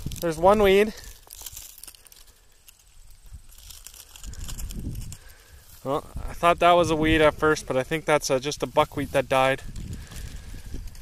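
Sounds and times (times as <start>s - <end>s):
stalks snapping: 0.0s - 5.4s
dry leaves crackling and rustling: 0.0s - 6.8s, 7.6s - 11.0s.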